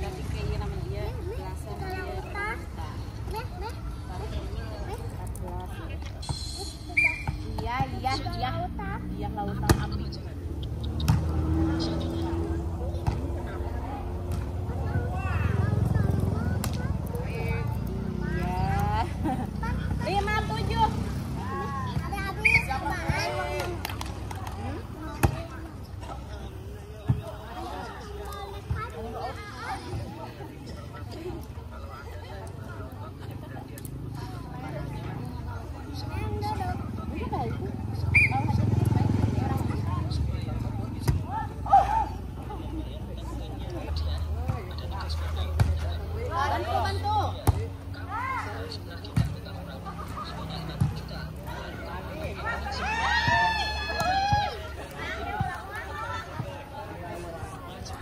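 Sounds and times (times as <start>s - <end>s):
high-pitched voices chattering: 0.0s - 58.0s
players calling out: 5.5s - 58.0s.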